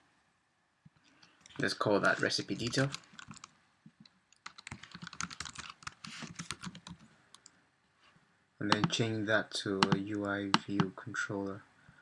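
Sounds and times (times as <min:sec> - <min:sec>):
typing on computer keyboard: 0:02.1 - 0:03.5, 0:04.4 - 0:07.5, 0:08.7 - 0:09.0, 0:09.8 - 0:10.9.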